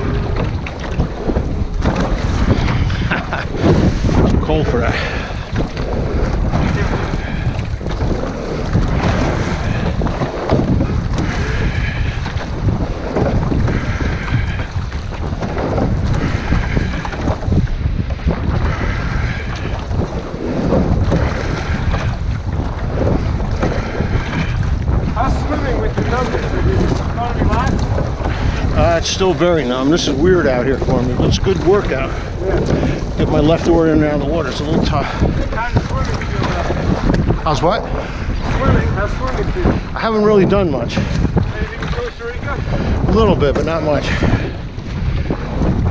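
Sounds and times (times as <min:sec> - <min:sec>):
oar stroke swish: 0:00.0 - 0:40.0
knocks and splashes: 0:00.0 - 0:45.9
water washing against boat hull: 0:00.0 - 0:45.9
wind buffeting microphone: 0:00.0 - 0:45.9.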